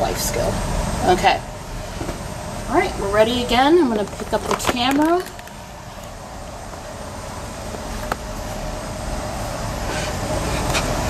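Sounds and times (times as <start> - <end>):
fume hood ventilation rushing air: 0.0 - 11.0.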